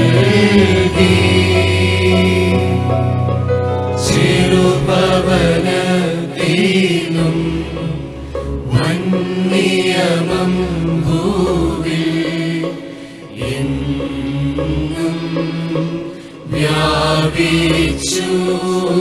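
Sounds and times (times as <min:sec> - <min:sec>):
sustained accompaniment: 0:00.0 - 0:19.0.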